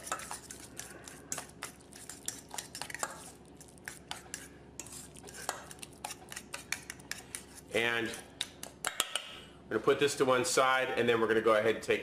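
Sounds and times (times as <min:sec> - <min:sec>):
fork clinking and scraping bowl: 0:00.0 - 0:08.2.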